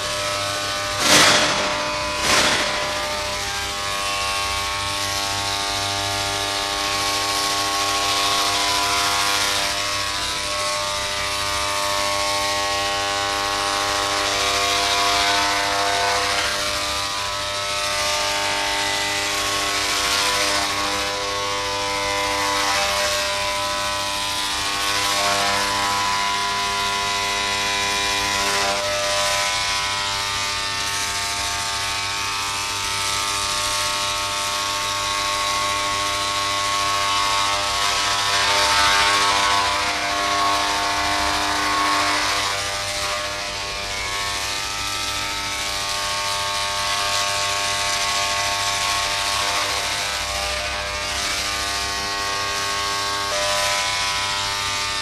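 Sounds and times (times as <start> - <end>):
electric hair clippers buzzing: 0.0 - 7.0, 45.2 - 55.0.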